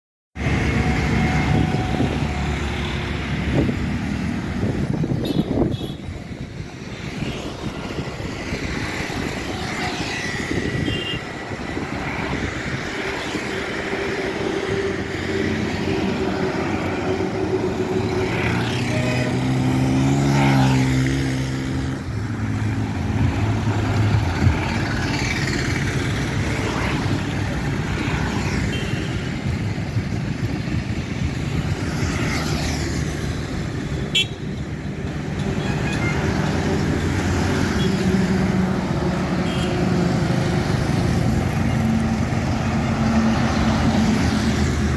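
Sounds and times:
road traffic rushing: 0.4 - 44.9
vehicle engine passing by: 15.8 - 27.3.

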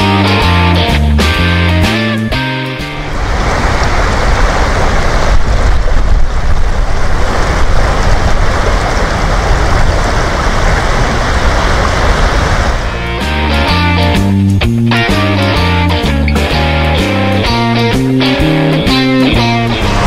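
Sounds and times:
water rushing over stones: 2.9 - 13.1
wind buffeting microphone: 3.0 - 13.0.

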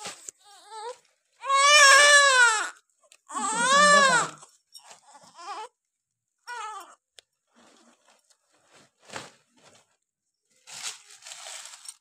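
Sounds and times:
newborn baby crying: 0.4 - 5.7, 6.4 - 7.0
baby whimpering: 3.3 - 5.7, 6.5 - 7.0.

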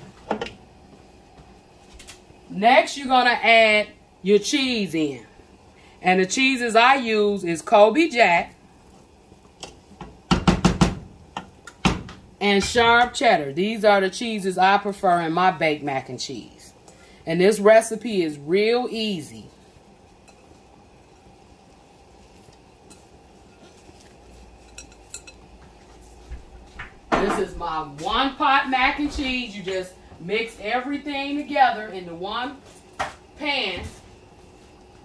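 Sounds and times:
wooden spoon knocking against pot: 10.0 - 12.2
utensils clinking on cookware: 24.6 - 25.6.

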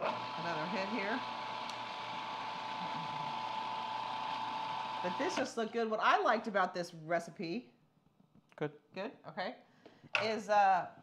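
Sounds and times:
food processor motor whirring: 0.0 - 5.7.

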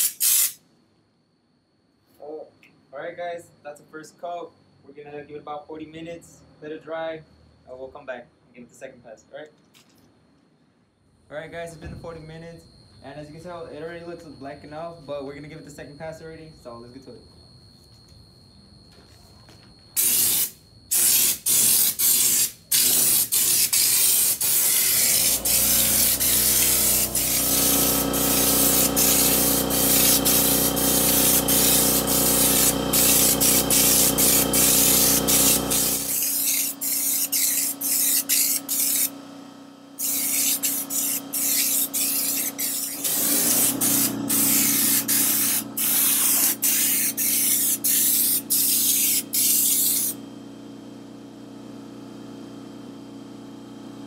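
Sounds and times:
spray gun hissing: 0.0 - 0.6, 20.0 - 39.1, 40.0 - 50.2
air compressor motor humming: 20.0 - 54.0.

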